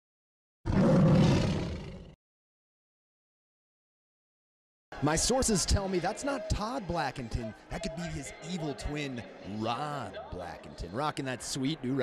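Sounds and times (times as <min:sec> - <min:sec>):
tiger roar: 0:00.7 - 0:02.2.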